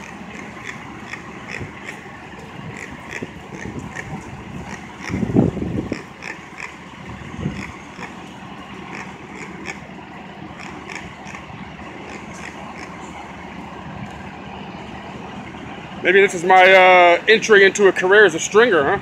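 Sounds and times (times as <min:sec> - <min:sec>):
city street traffic: 0:00.0 - 0:19.0
fire engine motor idling: 0:00.0 - 0:19.0.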